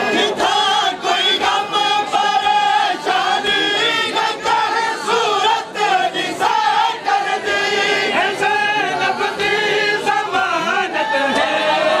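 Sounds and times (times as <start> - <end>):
men singing a lament together: 0.0 - 12.0.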